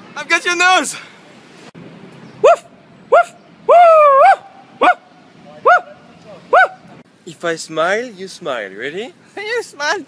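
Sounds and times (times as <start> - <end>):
wavering yelp: 2.4 - 6.9.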